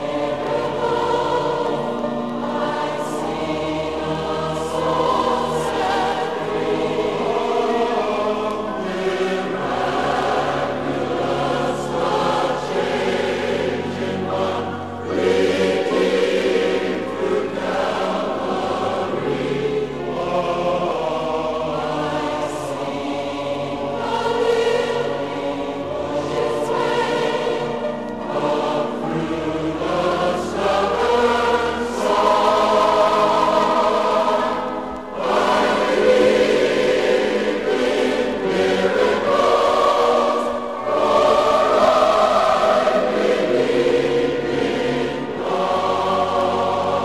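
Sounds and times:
choir singing slow sacred song: 0.0s - 47.0s.

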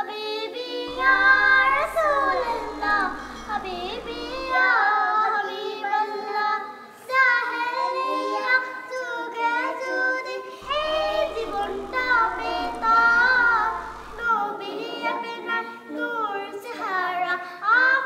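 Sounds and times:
girls singing devotional song: 0.0s - 18.0s.

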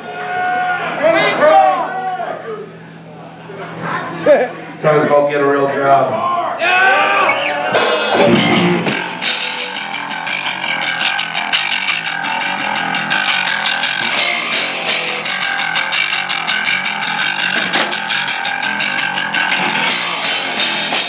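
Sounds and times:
bass guitar: 7.3s - 21.0s
distorted electric guitars: 7.7s - 21.0s
fast drum kit with cymbals: 7.8s - 21.0s.

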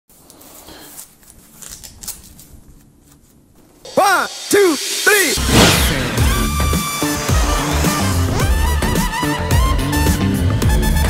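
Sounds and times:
gloves rustling: 0.1s - 3.8s.

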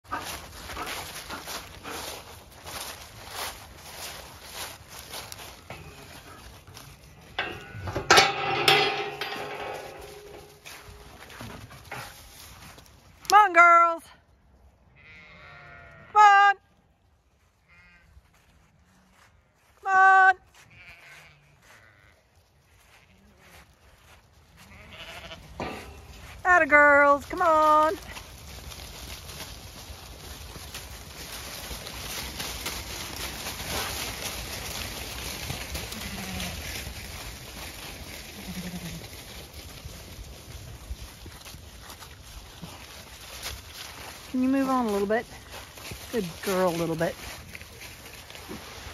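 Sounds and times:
footsteps through dry leaves: 0.0s - 7.4s, 9.8s - 13.2s, 17.1s - 19.8s, 20.4s - 26.5s, 27.1s - 48.9s
faint sheep bleating: 15.0s - 16.6s, 17.6s - 23.6s, 24.6s - 25.5s.

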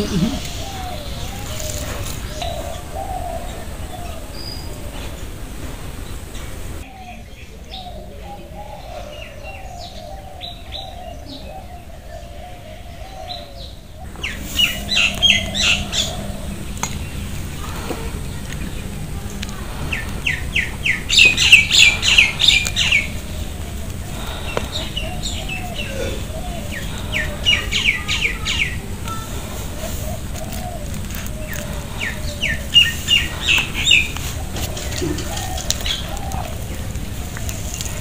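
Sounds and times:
bird chirping: 0.0s - 38.0s
low background rumble: 0.0s - 38.0s.

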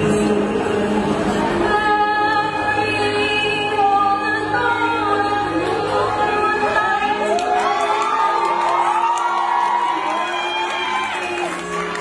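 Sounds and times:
person singing: 0.0s - 8.6s
backing music: 0.0s - 12.0s.

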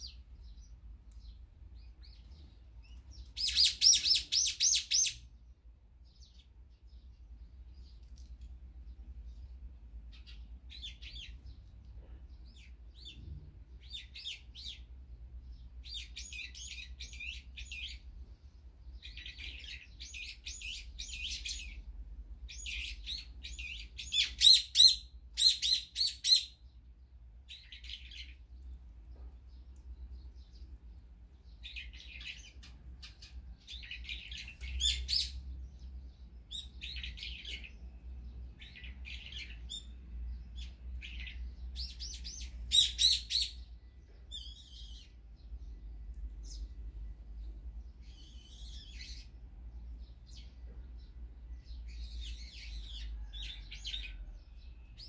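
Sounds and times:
songbirds chirping: 0.0s - 55.0s.

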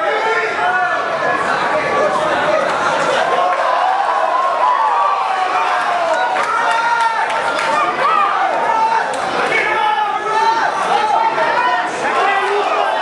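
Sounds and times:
crowd shouting in large hall: 0.0s - 13.0s.

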